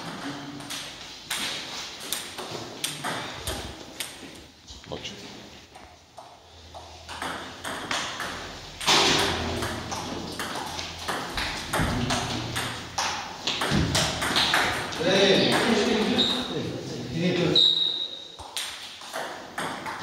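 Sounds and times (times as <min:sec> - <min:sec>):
table tennis balls clicking: 0:00.0 - 0:04.4, 0:05.8 - 0:16.2, 0:18.4 - 0:20.0
people talking: 0:15.0 - 0:17.6.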